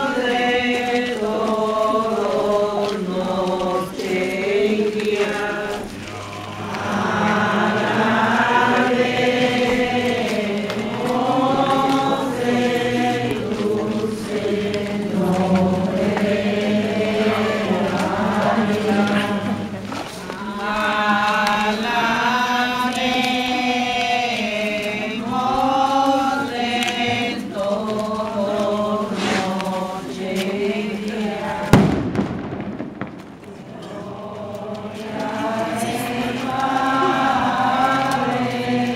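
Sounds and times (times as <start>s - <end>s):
group singing a hymn: 0.0s - 38.9s.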